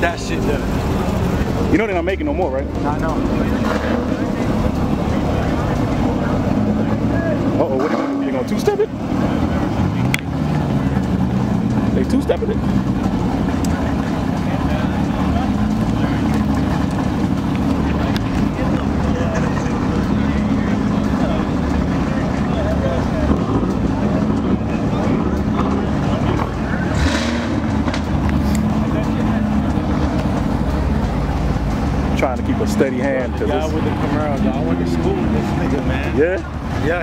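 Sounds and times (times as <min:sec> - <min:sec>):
car engine droning: 0:00.0 - 0:37.0.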